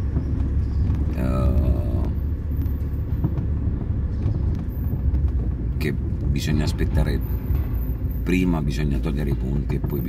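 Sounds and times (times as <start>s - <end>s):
car engine rumble: 0.0s - 10.0s
tyres on road: 0.0s - 10.0s.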